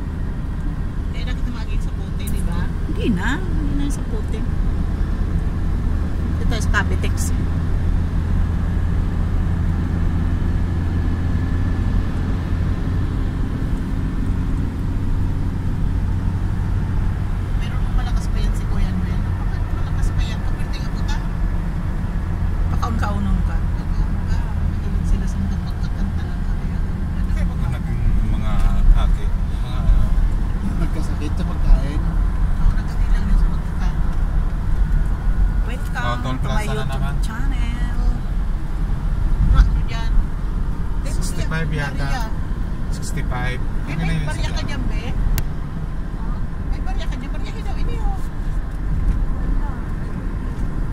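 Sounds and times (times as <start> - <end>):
car road and engine rumble: 0.0 - 50.9
faint voices: 1.5 - 4.4.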